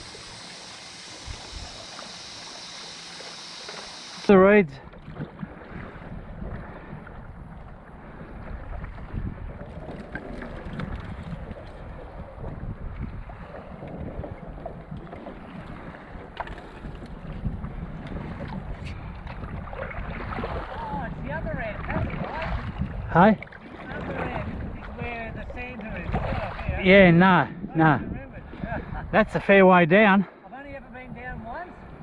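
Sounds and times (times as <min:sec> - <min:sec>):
wind noise on microphone: 0:00.0 - 0:02.2, 0:04.2 - 0:29.7, 0:30.7 - 0:32.0
paddle strokes: 0:00.0 - 0:26.8
water splashing and lapping: 0:00.0 - 0:27.0.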